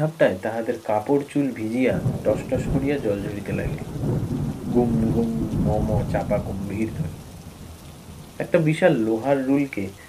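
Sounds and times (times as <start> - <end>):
heavy rain pouring: 0.6 - 10.0
low rumble of thunder: 1.8 - 10.0.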